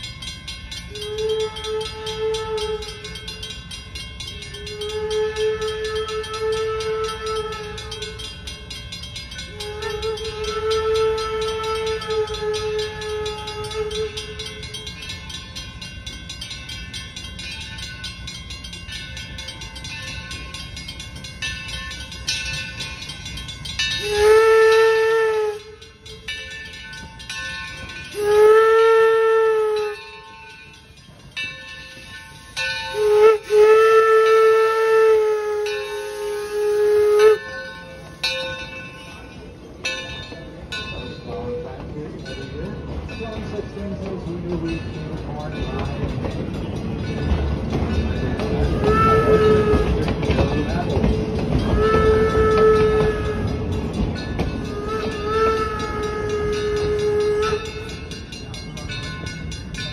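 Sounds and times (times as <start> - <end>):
steam locomotive whistle blasts: 0.7 - 15.4, 23.8 - 26.4, 27.3 - 30.4, 32.0 - 39.2, 48.4 - 50.7, 51.5 - 58.6.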